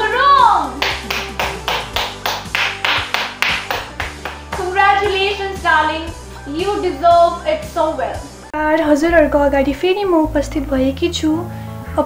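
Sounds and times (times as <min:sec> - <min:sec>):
background music: 0:00.0 - 0:12.0
hand clapping: 0:00.7 - 0:05.2.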